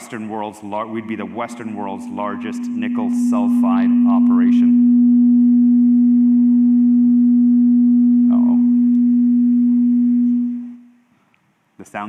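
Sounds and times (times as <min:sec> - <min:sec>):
speaker feedback tone: 0:01.0 - 0:11.0.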